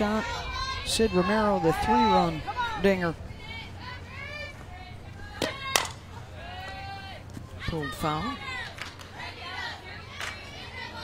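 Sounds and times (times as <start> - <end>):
spectator shouting: 0.0 - 9.9
crowd murmur: 0.0 - 11.0
bat cracking against ball: 5.4 - 6.0.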